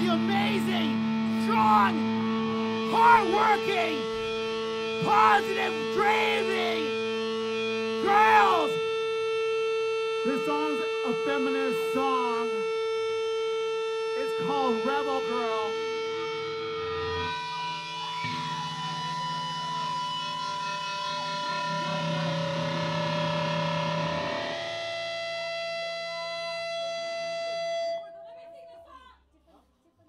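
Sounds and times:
band droning chord: 0.0 - 28.8
wavering sung voice: 5.0 - 7.2.

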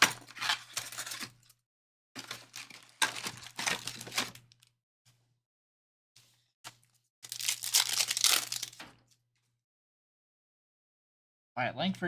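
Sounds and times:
foil packs crinkling: 2.2 - 4.6, 7.2 - 8.8.

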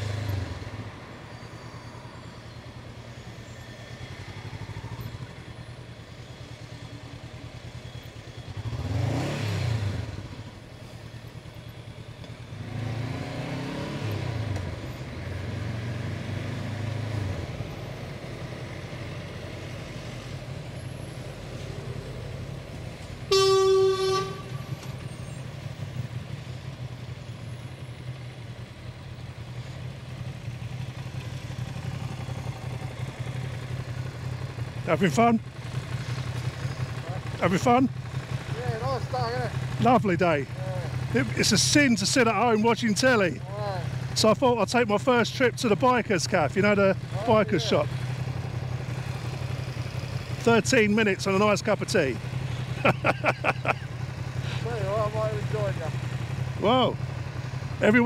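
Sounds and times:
motorcycle engine revving: 6.6 - 58.0
vehicle horn: 23.3 - 25.0.

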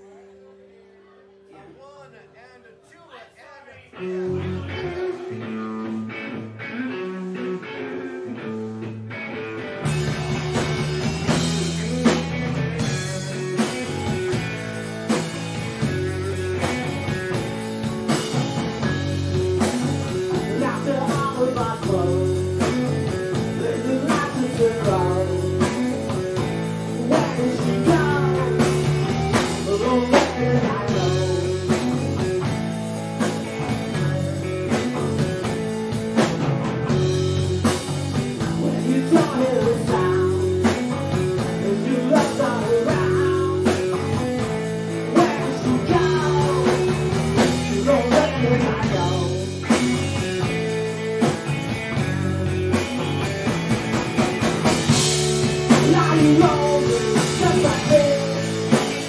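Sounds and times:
live rock band playing: 0.0 - 59.0.

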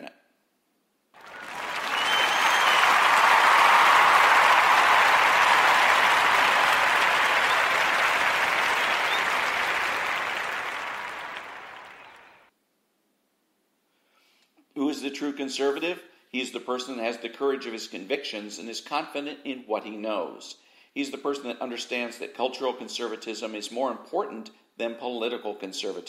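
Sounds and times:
crowd applause: 1.2 - 12.5.

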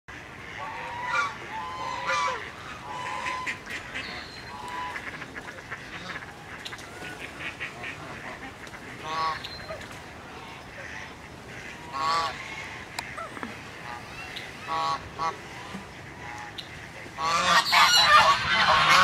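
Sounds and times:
geese honking: 0.1 - 19.0.

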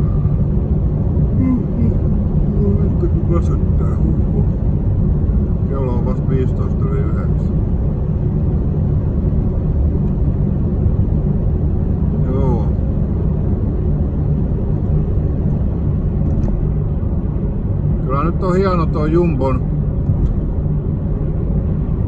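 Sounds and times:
car road and engine rumble: 0.0 - 22.0
brief vocal sound: 1.4 - 2.0.

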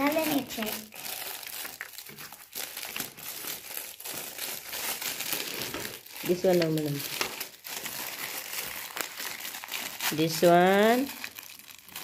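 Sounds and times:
plastic wrapping crinkling: 0.0 - 12.0.

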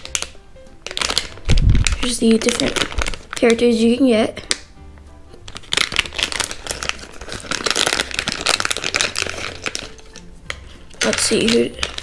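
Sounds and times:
plastic foil packet crinkling: 0.0 - 4.7, 5.3 - 12.0.

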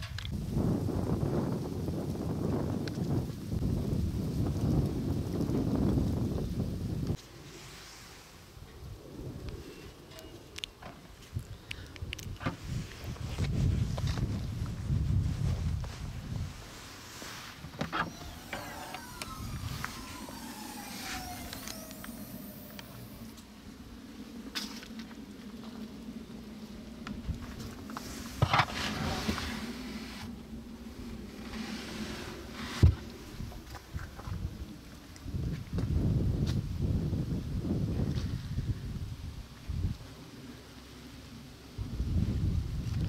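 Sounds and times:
tailgate motor whine: 17.7 - 23.8.

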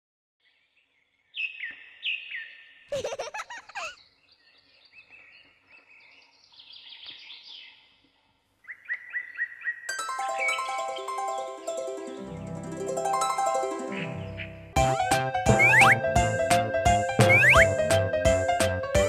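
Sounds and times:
cartoon birds chirping: 2.8 - 4.1, 15.5 - 16.0, 17.2 - 17.8
harp-like music: 9.9 - 19.0
sweeping bird warbles: 15.5 - 16.0, 17.2 - 17.7.

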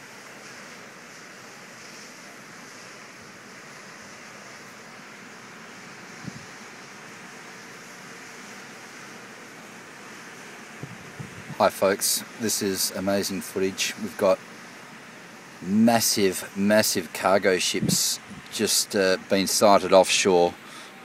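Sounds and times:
wind: 0.0 - 21.0.

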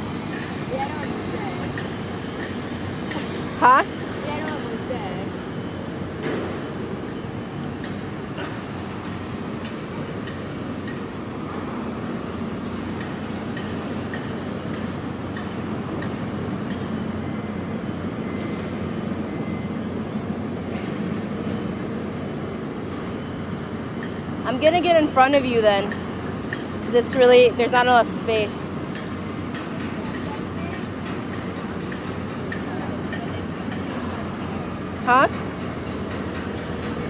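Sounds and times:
city street traffic rumble: 0.0 - 37.0.

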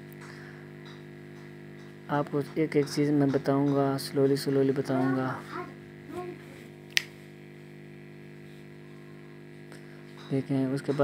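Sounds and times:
electrical hum: 0.0 - 11.0
sharp click: 6.9 - 7.1.

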